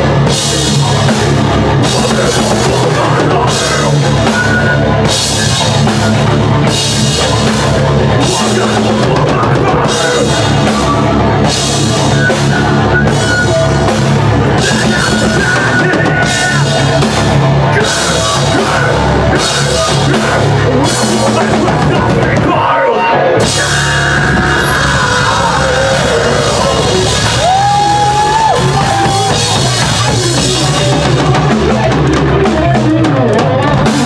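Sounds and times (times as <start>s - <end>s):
thrash metal band playing: 0.0s - 34.0s.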